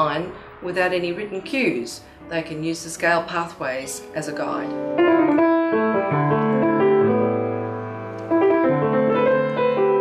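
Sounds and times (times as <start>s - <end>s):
piano chords: 0.0s - 10.0s.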